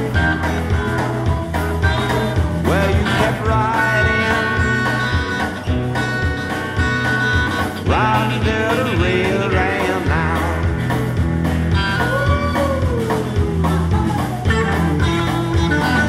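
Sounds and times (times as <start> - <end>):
drum kit steady beat: 0.0 - 16.0
electric bass: 0.0 - 16.0
lead guitar bending notes: 0.0 - 16.0.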